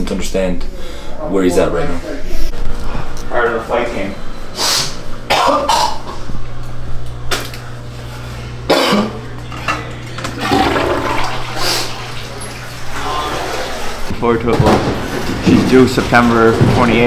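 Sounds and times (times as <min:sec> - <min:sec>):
steady low hum: 0:00.0 - 0:17.0
toilet flushing: 0:10.2 - 0:14.1.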